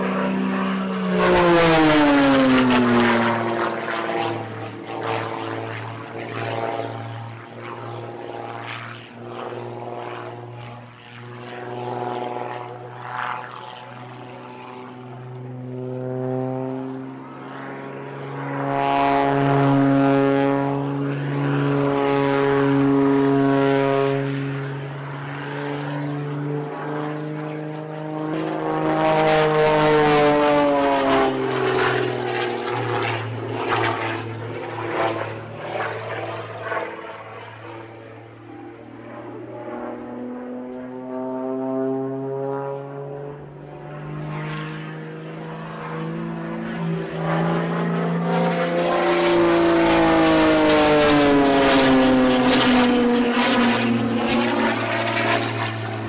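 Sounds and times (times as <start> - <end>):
propeller plane engine droning: 0.0 - 56.0.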